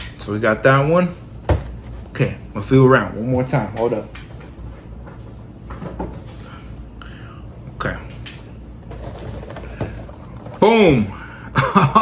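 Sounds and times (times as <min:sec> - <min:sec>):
low steady hum: 0:00.0 - 0:12.0
rustling and knocking of toys: 0:08.2 - 0:11.0.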